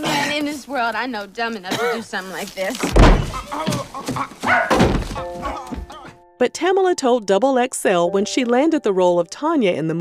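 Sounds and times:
dull thuds: 2.8s - 6.1s.

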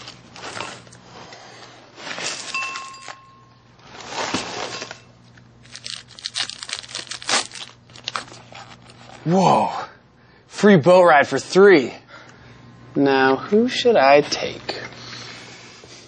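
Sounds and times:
paper and packaging rustling: 3.9s - 9.2s.

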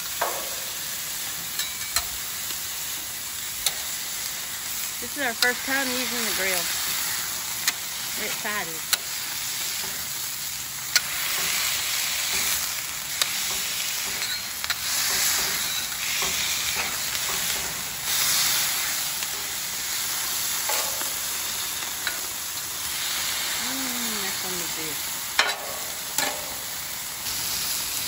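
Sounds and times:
meat sizzling on a griddle: 0.0s - 28.0s.

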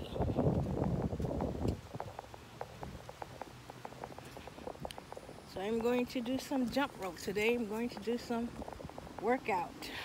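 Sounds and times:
wind rumbling on microphone: 0.0s - 10.0s
light irregular ticks: 0.5s - 10.0s.

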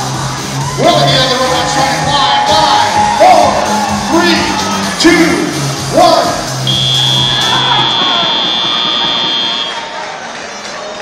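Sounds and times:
crowd noise in a hall: 0.0s - 11.0s
high-pitched buzzer tone: 6.6s - 9.8s.

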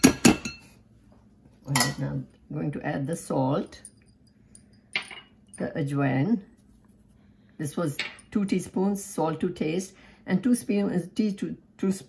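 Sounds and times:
metal spoon clinking on sieve: 1.7s - 2.1s.

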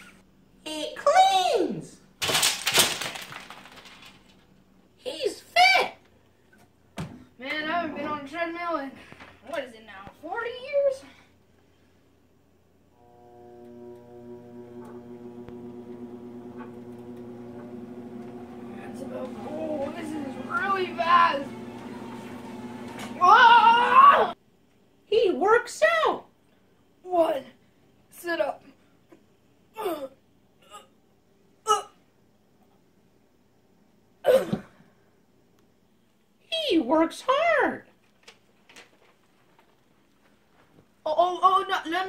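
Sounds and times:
treadmill motor whine: 12.9s - 24.4s
boy grunting: 29.7s - 31.0s, 31.6s - 32.0s.

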